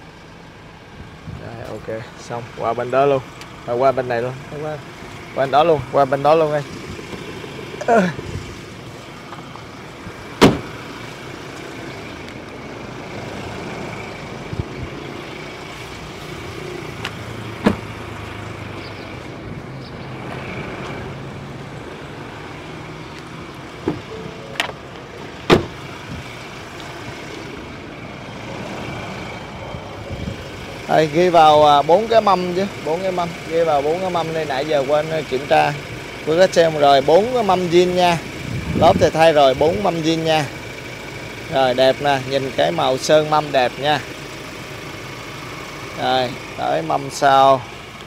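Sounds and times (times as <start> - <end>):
diesel engine idling: 0.0 - 48.0.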